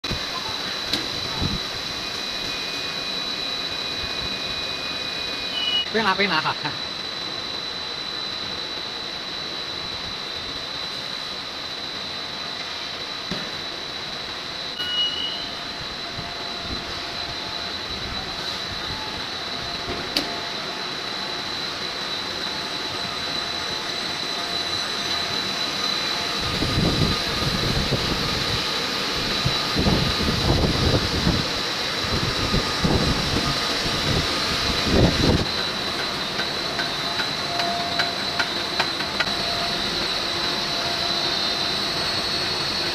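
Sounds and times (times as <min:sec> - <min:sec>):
high-pitched machine whine: 0:00.0 - 0:42.9
machinery running: 0:14.0 - 0:42.9.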